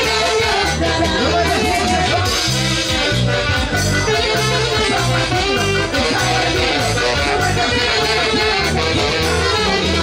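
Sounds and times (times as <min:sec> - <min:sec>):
live band playing dance music: 0:00.0 - 0:10.0
repeating bass beat: 0:00.0 - 0:10.0.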